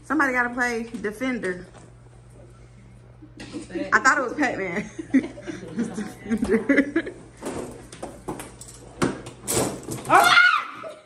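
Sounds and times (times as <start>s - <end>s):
woman squealing: 10.1s - 11.0s.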